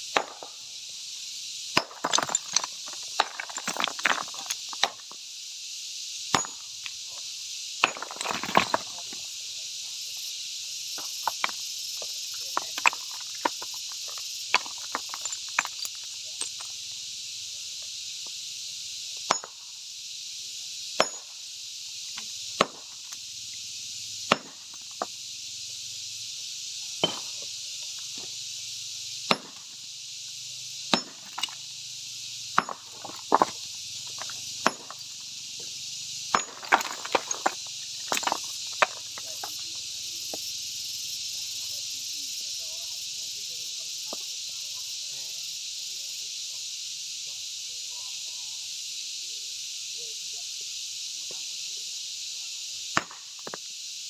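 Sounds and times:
sledgehammer striking stone: 0.1s - 0.6s, 1.7s - 5.2s, 6.3s - 6.8s, 7.8s - 9.1s, 11.0s - 16.8s, 19.2s - 19.6s, 21.0s - 21.4s, 22.6s - 23.1s, 24.2s - 25.1s, 27.0s - 27.5s, 29.2s - 29.8s, 30.9s - 31.7s, 32.5s - 35.2s, 36.3s - 39.6s, 53.0s - 53.6s.

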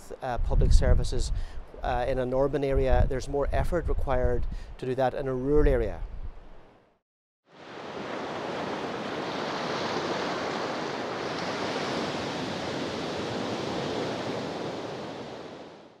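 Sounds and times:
ocean waves breaking: 7.5s - 16.0s.

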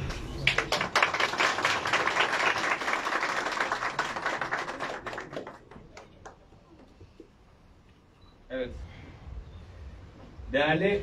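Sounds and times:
crowd applauding: 0.0s - 6.7s.

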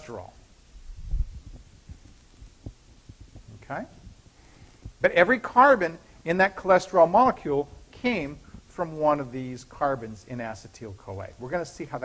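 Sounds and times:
soft low thumps: 0.4s - 5.2s.

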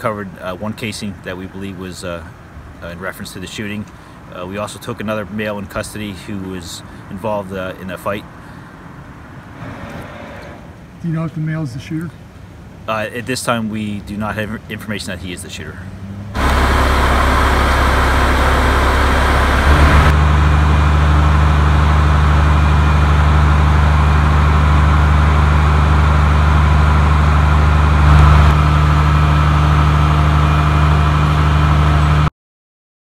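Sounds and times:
diesel truck engine droning: 15.6s - 32.3s.

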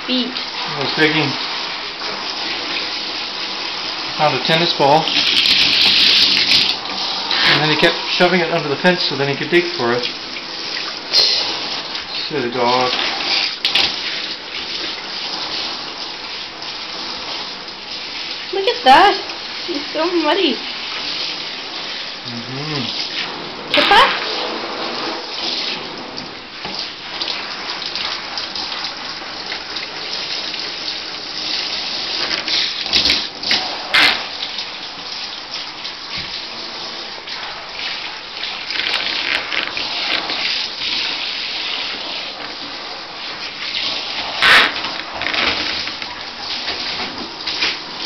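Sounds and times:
shower water spraying: 0.0s - 48.0s.

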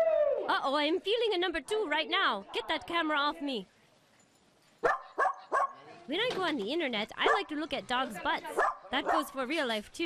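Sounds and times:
dog barking: 4.8s - 5.8s, 7.2s - 7.5s, 8.6s - 9.3s.

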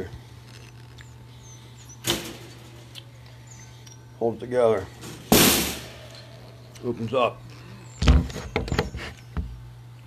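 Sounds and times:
steady low hum: 0.0s - 10.0s
wire crate clanking: 2.0s - 2.8s, 5.0s - 6.0s.

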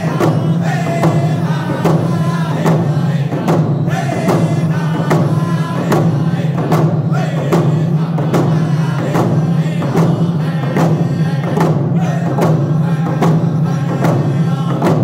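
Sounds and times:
hand drums beating: 0.0s - 15.0s
men singing in unison: 0.0s - 15.0s.

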